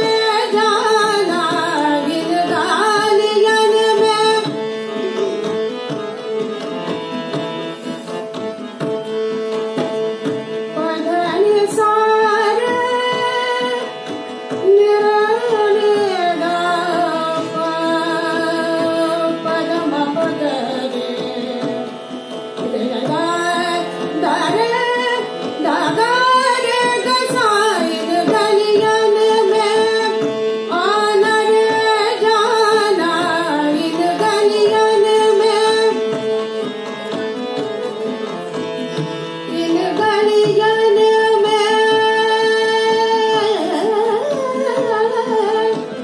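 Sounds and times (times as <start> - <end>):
woman singing devotional song: 0.0 - 7.5, 10.2 - 46.0
harmonium sustained notes: 0.0 - 46.0
tabla: 0.0 - 46.0.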